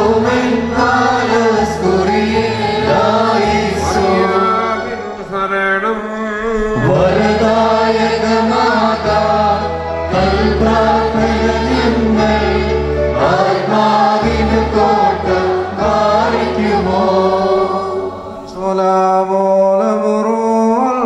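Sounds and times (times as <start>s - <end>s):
choir singing a chant-like hymn: 0.0s - 19.9s.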